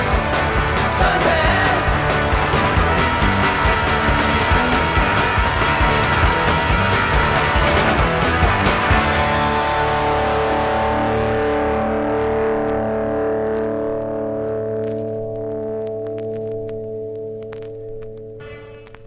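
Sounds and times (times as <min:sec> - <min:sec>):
punk rock guitar chord ringing: 0:00.0 - 0:15.8, 0:18.3 - 0:19.0.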